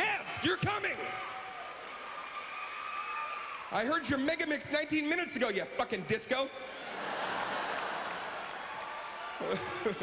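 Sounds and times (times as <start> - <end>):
crowded hall background noise: 0.0 - 10.0.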